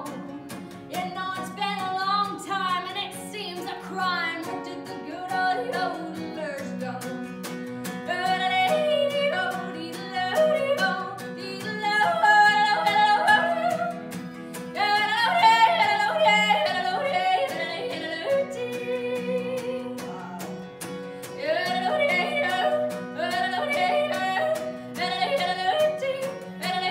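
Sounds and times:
strummed acoustic guitar: 0.0s - 26.9s.

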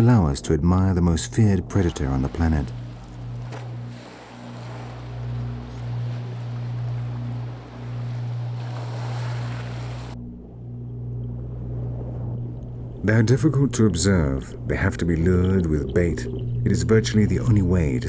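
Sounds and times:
boat engine humming: 0.0s - 18.0s
sea water splashing: 0.0s - 18.0s.

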